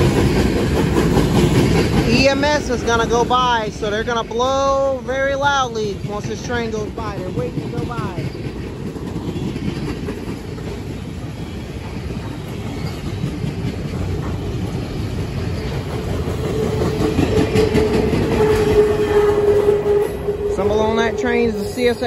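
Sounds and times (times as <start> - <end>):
freight train wheels clattering: 0.0 - 22.0.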